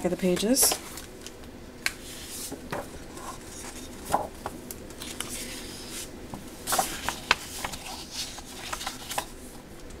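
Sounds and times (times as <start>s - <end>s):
paper sheets rustling and sliding: 5.0s - 9.3s.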